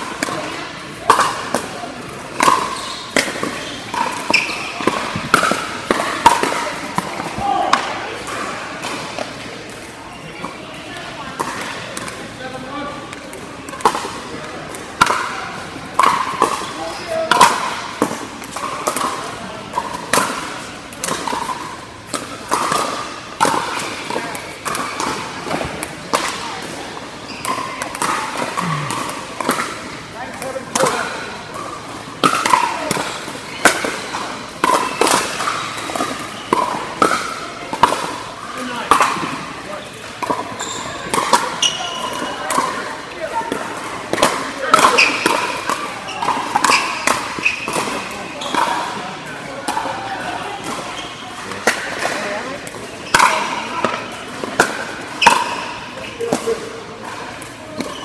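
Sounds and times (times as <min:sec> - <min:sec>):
players' voices: 0:00.0 - 0:58.0
paddles hitting plastic ball: 0:00.1 - 0:10.0, 0:13.1 - 0:39.4, 0:40.0 - 0:48.9.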